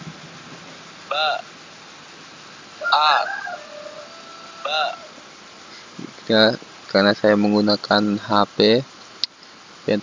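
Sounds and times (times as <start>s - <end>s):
recorded voice pronouncing a letter: 1.1s - 1.5s, 2.8s - 3.5s, 4.6s - 5.1s, 6.0s - 8.9s.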